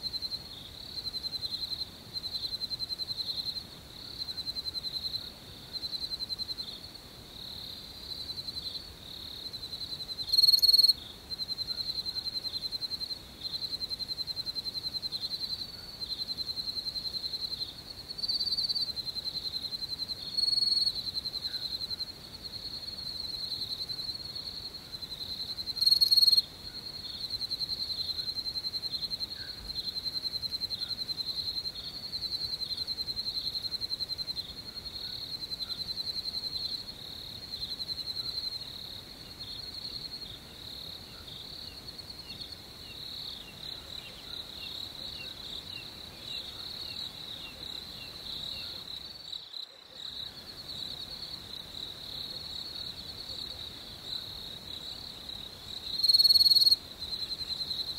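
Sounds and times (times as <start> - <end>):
crickets chirping: 0.0 - 57.9.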